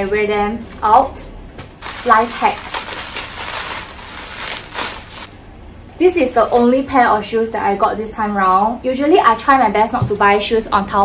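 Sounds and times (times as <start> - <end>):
bubble wrap crinkling: 0.0 - 7.1.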